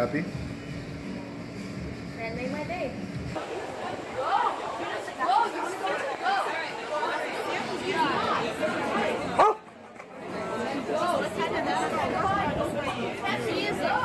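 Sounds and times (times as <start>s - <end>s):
crowd chatter: 2.2s - 14.0s
dog barking: 9.4s - 9.6s.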